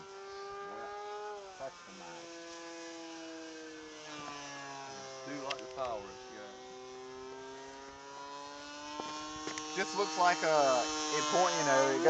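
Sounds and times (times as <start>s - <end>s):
model plane motor whining: 0.0s - 12.0s.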